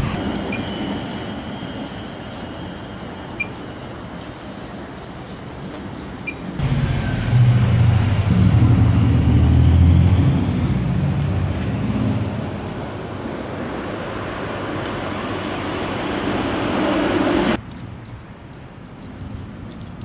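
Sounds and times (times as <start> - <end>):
heavy vehicle low hum: 0.0 - 17.6
city street traffic: 0.0 - 20.0.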